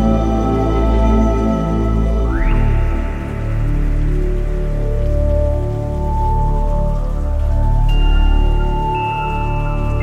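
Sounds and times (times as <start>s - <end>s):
slow electronic music: 0.0s - 10.0s
soft rain-like hiss: 0.0s - 10.0s.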